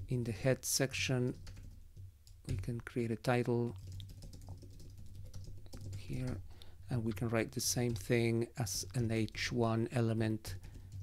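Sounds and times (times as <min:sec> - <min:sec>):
computer keyboard typing: 0:01.3 - 0:06.4, 0:10.5 - 0:11.0.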